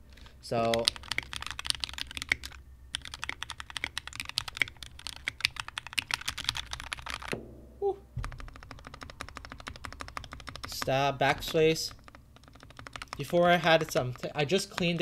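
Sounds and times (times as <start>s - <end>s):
muted mechanical keyboard typing: 0.5s - 7.4s, 8.2s - 15.0s.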